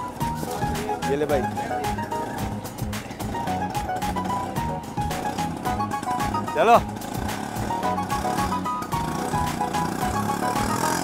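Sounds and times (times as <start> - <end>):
auto-rickshaw engine running: 0.0 - 11.0
light background music: 0.0 - 11.0.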